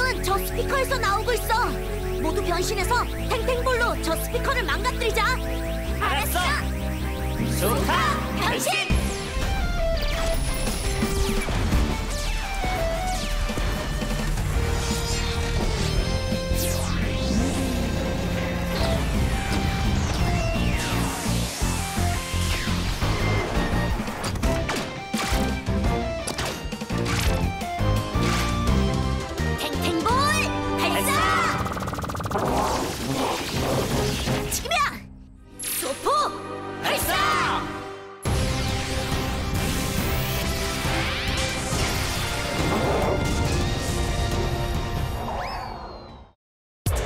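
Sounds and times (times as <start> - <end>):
upbeat cartoon music: 0.0 - 45.3
robot buzzing rattle: 31.5 - 33.4.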